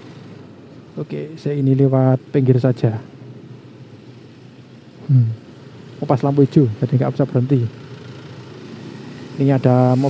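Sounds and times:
motorcycle engine humming: 0:00.0 - 0:10.0
road noise: 0:00.0 - 0:10.0.

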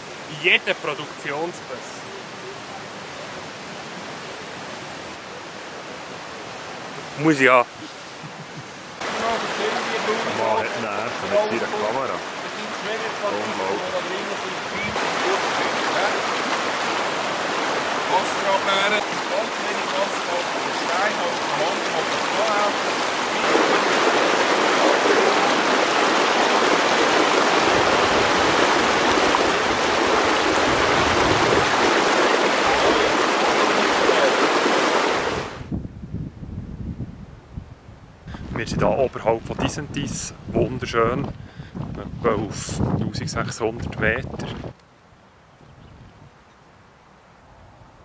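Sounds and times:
stream rushing over stones: 0:00.0 - 0:08.2, 0:08.8 - 0:35.7.

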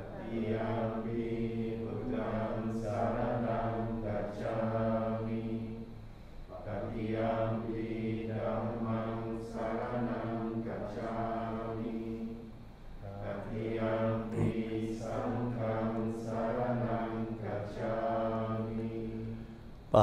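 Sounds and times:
monks chanting in low monotone: 0:00.0 - 0:20.0.

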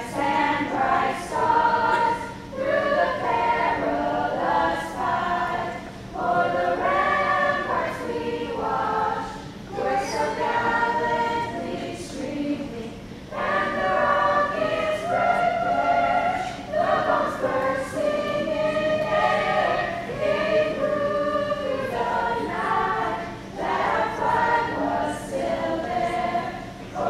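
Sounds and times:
group of voices singing: 0:00.0 - 0:27.0.

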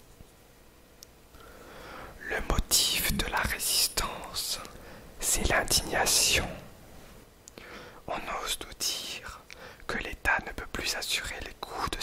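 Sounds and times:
person whispering: 0:02.2 - 0:06.7, 0:08.1 - 0:12.0.

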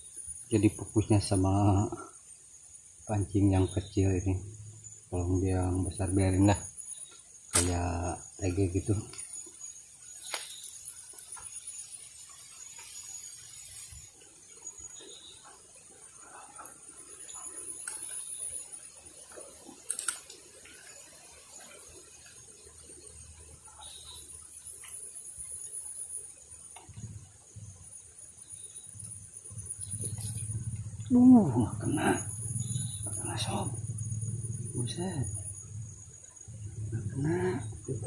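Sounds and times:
insects buzzing: 0:00.0 - 0:38.0
sharp click: 0:07.5 - 0:07.8
faint clicks and rustles: 0:28.9 - 0:31.1.

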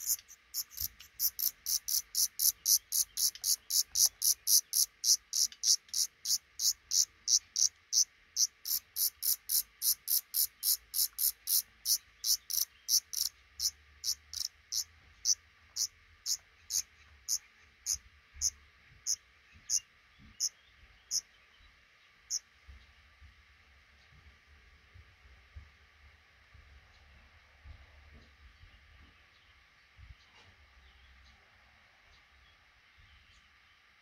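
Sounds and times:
high-pitched bird calls: 0:00.0 - 0:18.5.

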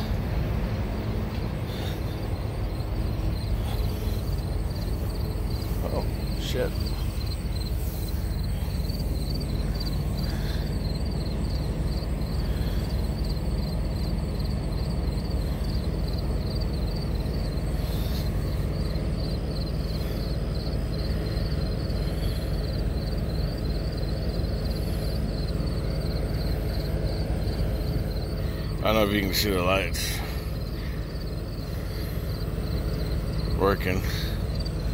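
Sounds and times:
diesel truck engine idling: 0:00.0 - 0:34.9.

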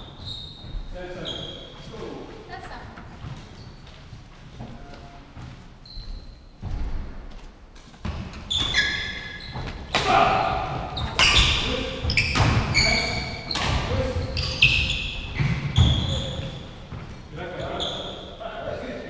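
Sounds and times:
shoes squeaking on wooden floor: 0:00.0 - 0:10.0, 0:10.6 - 0:18.9.

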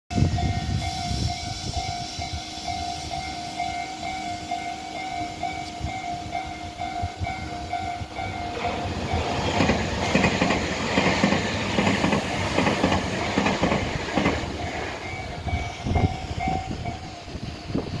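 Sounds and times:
electric train passing: 0:00.1 - 0:18.0
level-crossing alarm dinging: 0:00.3 - 0:18.0
train wheels clacking on rail joints: 0:02.7 - 0:17.1.

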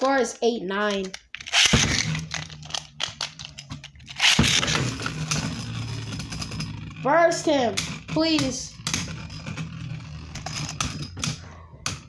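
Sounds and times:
spinning tops humming and rattling: 0:01.5 - 0:12.0.

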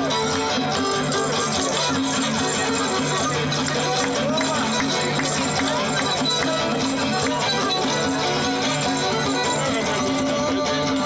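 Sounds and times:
plucked lute: 0:00.0 - 0:11.0.

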